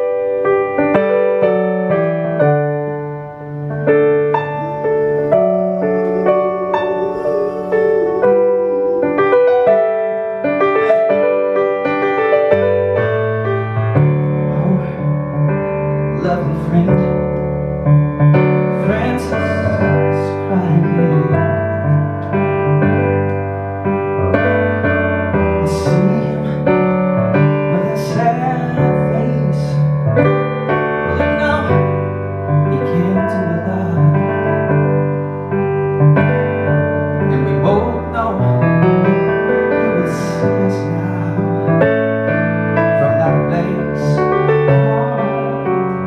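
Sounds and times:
piano chords: 0:00.0 - 0:46.0
man singing: 0:04.3 - 0:09.9, 0:14.5 - 0:15.2, 0:16.1 - 0:17.4, 0:18.7 - 0:21.6, 0:25.6 - 0:26.8, 0:27.7 - 0:30.0, 0:31.0 - 0:34.4, 0:37.3 - 0:38.7, 0:39.7 - 0:42.0, 0:42.9 - 0:45.8.

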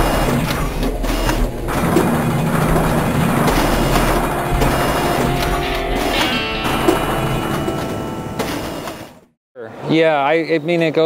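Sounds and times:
sharp mechanical clicks: 0:00.0 - 0:06.3
mechanical whirring: 0:00.0 - 0:09.3.

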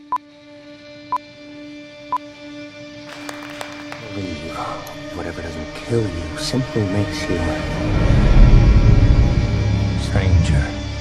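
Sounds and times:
music: 0:00.0 - 0:11.0
person speaking: 0:03.1 - 0:05.1.

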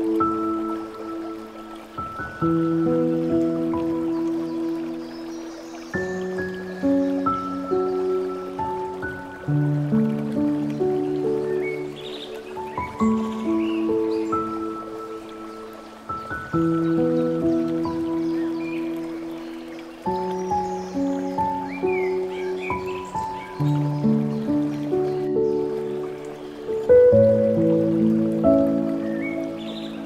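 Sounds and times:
slow gentle piano music: 0:00.0 - 0:30.0.

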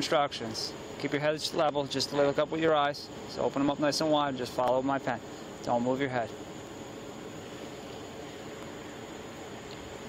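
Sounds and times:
even hiss: 0:00.0 - 0:10.0
faint constant hum: 0:00.0 - 0:10.0.

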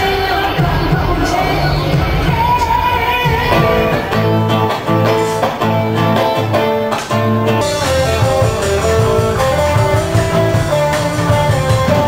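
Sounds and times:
bass line: 0:00.0 - 0:12.0
guitar riff: 0:00.0 - 0:12.0.

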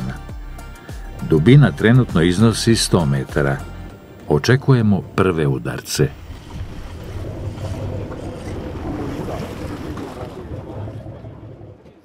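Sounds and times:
waves against boat hull: 0:06.1 - 0:12.0
wind buffeting microphone: 0:06.1 - 0:12.0.

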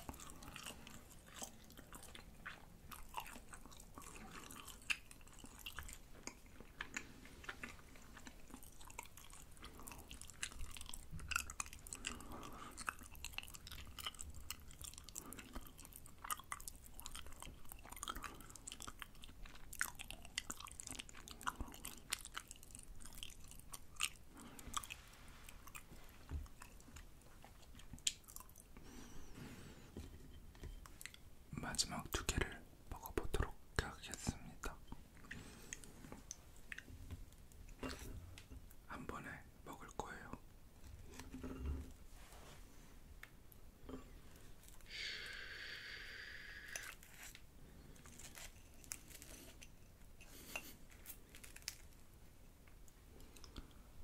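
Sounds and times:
crunchy chewing and biting: 0:00.0 - 0:28.7, 0:46.6 - 0:52.0.

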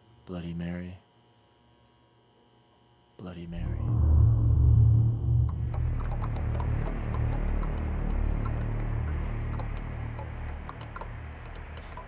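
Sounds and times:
low droning hum: 0:03.2 - 0:12.0.

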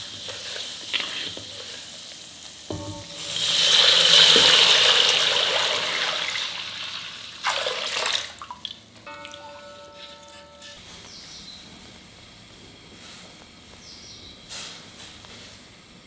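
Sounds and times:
faint sizzle: 0:00.0 - 0:07.4, 0:08.8 - 0:16.0
milk hissing in hot pan: 0:00.0 - 0:07.4
knock on metal pan: 0:02.7 - 0:03.5.

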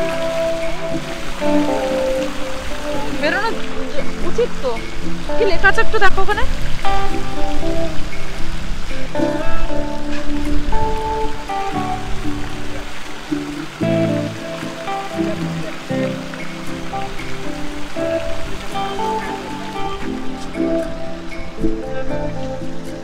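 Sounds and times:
instrumental background music: 0:00.0 - 0:23.0.

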